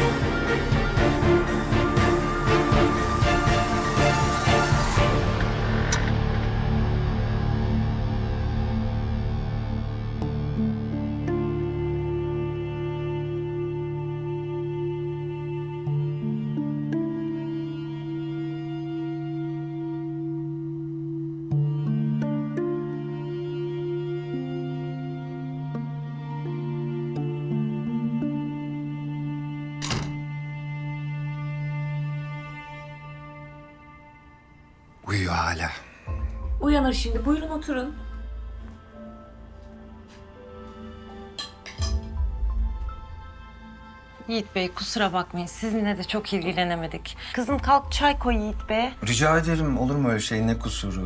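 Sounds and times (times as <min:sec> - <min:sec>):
sustained music chord: 0:00.0 - 0:51.0.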